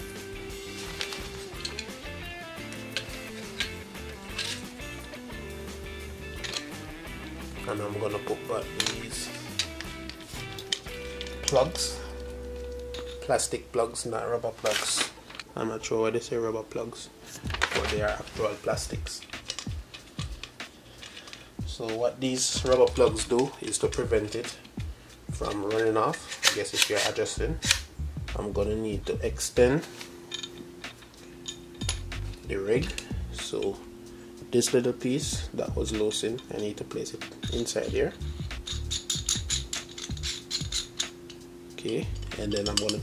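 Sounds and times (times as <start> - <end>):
background music: 0.0 - 43.0
light knocks of parts: 17.4 - 21.4
small metal and plastic clicks: 19.3 - 21.4.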